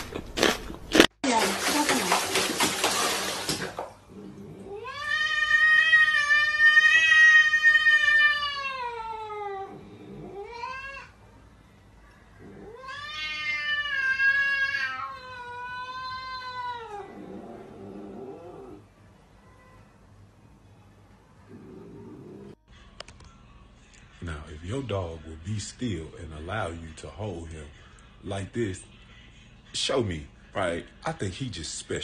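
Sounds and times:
cat yowling: 4.6 - 11.2, 12.4 - 17.4.

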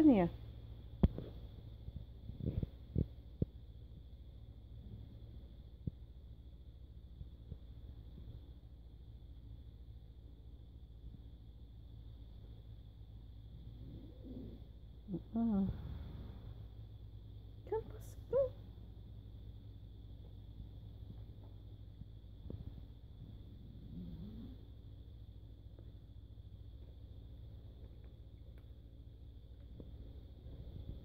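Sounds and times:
low rumble: 0.0 - 31.0.

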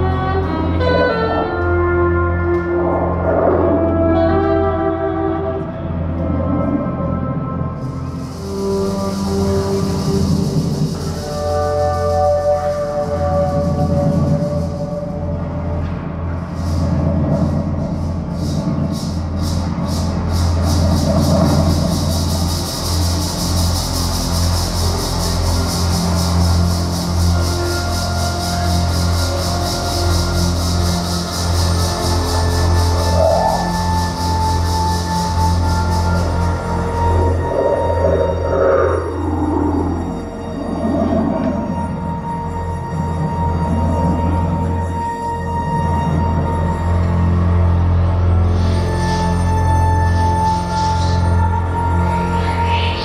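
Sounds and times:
low drone: 0.0 - 53.0
high-pitched pulsing rhythm: 6.0 - 53.0.

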